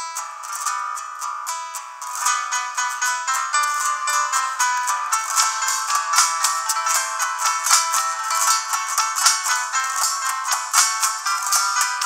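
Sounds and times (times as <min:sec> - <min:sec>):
acoustic guitar plucked notes: 0:00.0 - 0:12.0.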